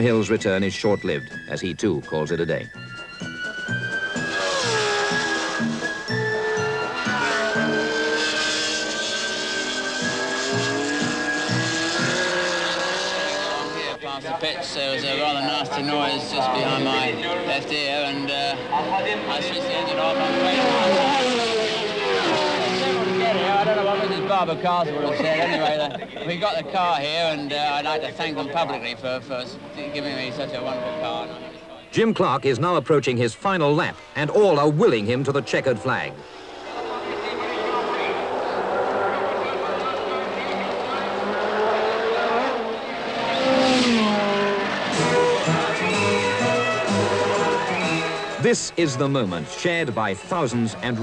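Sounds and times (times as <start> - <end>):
music with held stepping notes: 0.0 - 8.0
racing car engines passing: 3.1 - 32.5, 34.4 - 51.0.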